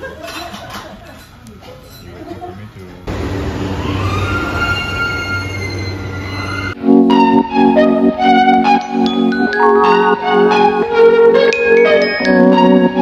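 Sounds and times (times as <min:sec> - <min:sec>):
train rumbling with whine: 0:03.1 - 0:06.8
music with mallet percussion: 0:08.4 - 0:13.0.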